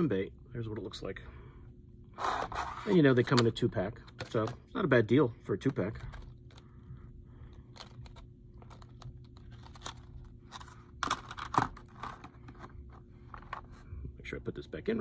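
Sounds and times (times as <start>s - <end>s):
faint steady hum: 0.0s - 15.0s
plastic packaging crinkling: 7.7s - 13.5s.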